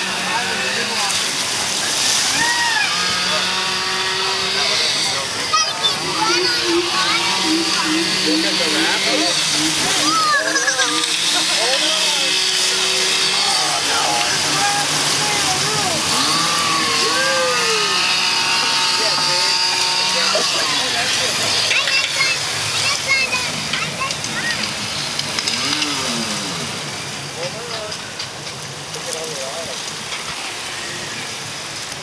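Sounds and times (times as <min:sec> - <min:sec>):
chainsaw revving: 0:00.0 - 0:28.6
river water rushing: 0:00.0 - 0:32.0.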